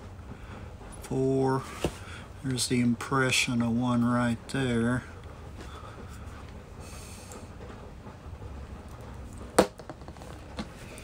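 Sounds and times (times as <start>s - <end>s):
low steady background hum: 0.0s - 11.0s.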